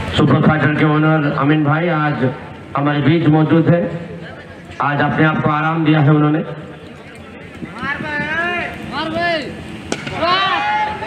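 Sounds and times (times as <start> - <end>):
cricket bat striking ball: 9.9 - 10.3.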